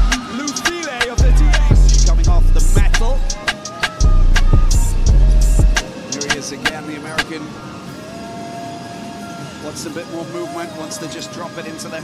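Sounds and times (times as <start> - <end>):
hip-hop track with heavy bass: 0.0 - 7.5.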